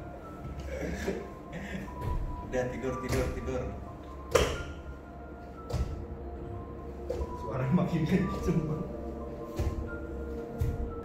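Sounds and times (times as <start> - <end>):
sudden thuds: 9.5 - 11.0.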